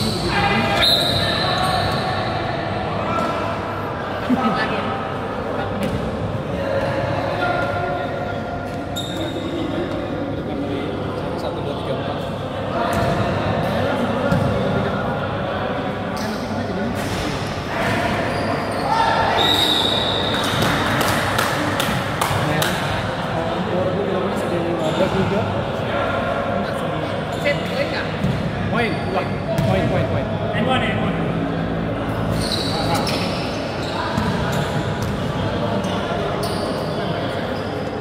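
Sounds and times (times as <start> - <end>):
players' voices: 0.0 - 38.0
basketball bouncing on court: 29.6 - 29.9, 34.2 - 35.3.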